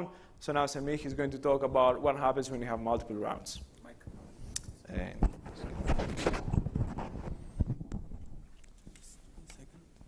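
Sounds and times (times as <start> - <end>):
microphone handling thumps: 0.8 - 8.6.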